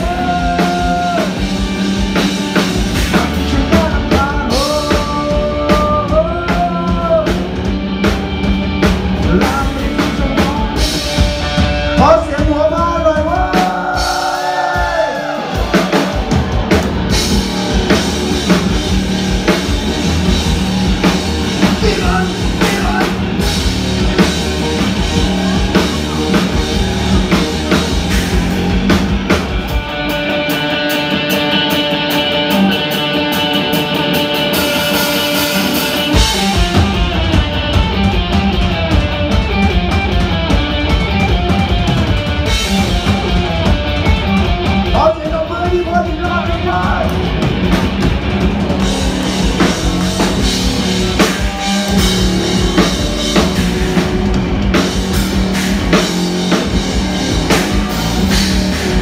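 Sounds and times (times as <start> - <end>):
rock band playing: 0.0 - 59.0.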